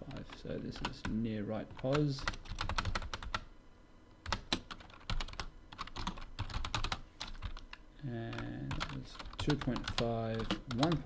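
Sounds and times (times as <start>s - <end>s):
computer keyboard typing: 0.0s - 3.5s, 4.2s - 11.0s.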